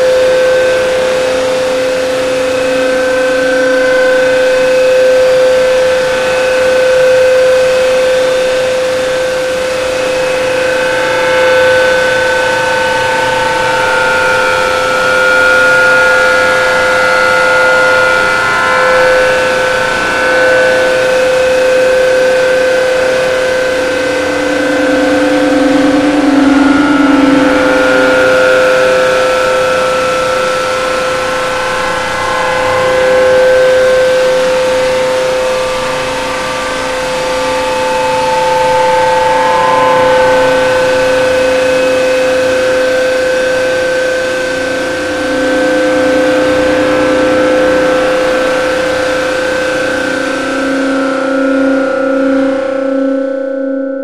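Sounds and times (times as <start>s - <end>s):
drone of held tones: 0.0s - 54.0s.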